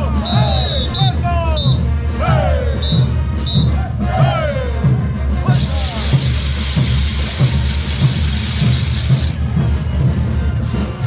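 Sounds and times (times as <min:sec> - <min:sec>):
bass drum beat: 0:00.0 - 0:09.7
parade band music: 0:00.0 - 0:11.0
wooden ratchets rattling: 0:05.6 - 0:09.4.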